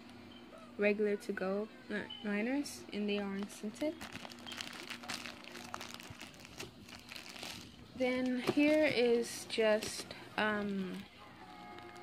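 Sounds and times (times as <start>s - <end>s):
plastic wrappers crinkling: 3.3s - 12.0s.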